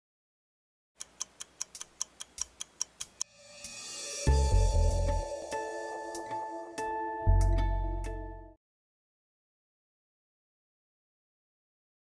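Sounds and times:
rapid clock-like ticking: 1.0 - 3.2.

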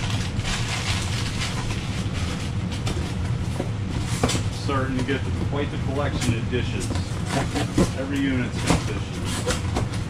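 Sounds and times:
packing paper crumpling: 0.0 - 2.6
steady low rumble: 0.0 - 10.0.

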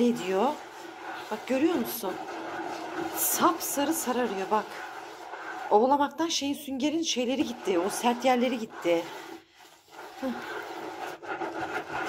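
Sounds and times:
sponge scrubbing wet sink: 0.0 - 12.0.

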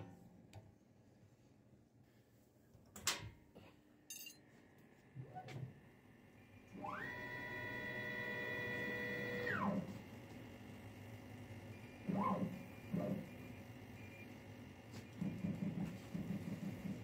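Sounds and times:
router motors whining: 6.7 - 9.9.

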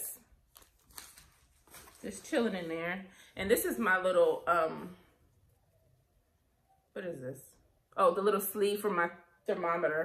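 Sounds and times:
paper and wrappers crinkling: 0.4 - 3.0.

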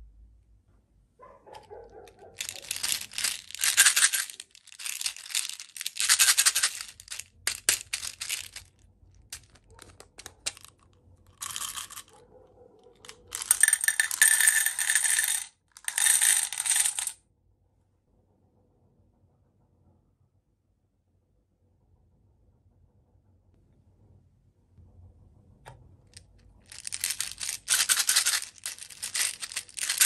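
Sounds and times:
plastic beads rattling in toy bottle: 2.3 - 12.2, 13.0 - 17.2, 26.2 - 30.0
beads pouring into metal tin: 2.4 - 8.7, 10.5 - 12.1, 13.2 - 17.2, 26.6 - 30.0.

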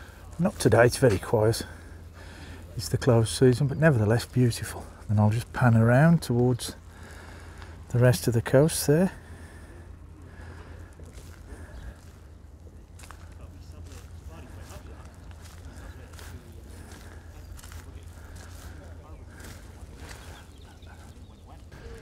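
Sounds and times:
faint distant voices: 0.0 - 22.0
footsteps on paving: 10.3 - 22.0.

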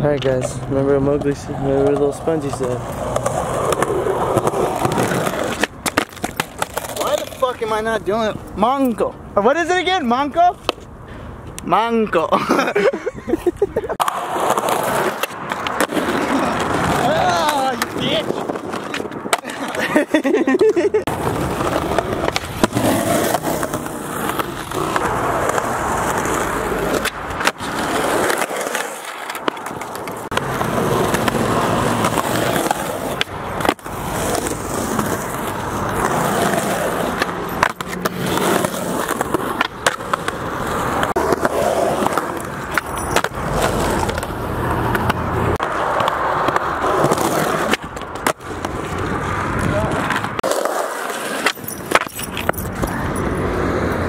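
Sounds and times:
skateboard wheels rolling on concrete: 0.0 - 54.0
skateboard clacking: 1.1 - 7.7, 13.3 - 53.2.

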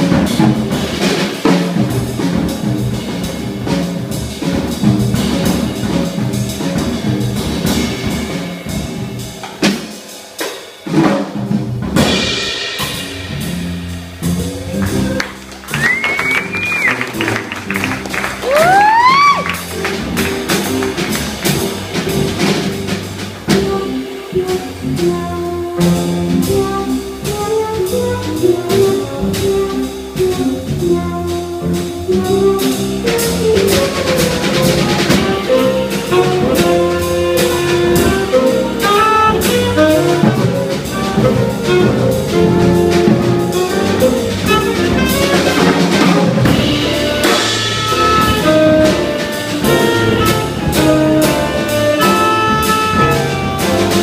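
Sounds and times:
drum kit cymbals: 0.0 - 54.0
small jazz band playing: 0.0 - 54.0
saxophone melody: 23.5 - 54.0.

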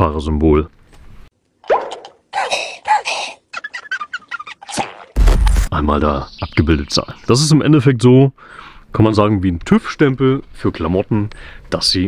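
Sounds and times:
cartoon falling glide: 3.5 - 5.7.

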